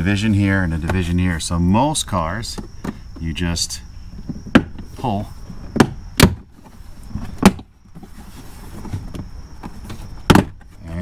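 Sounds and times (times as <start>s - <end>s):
plastic rubbing: 4.0s - 11.0s.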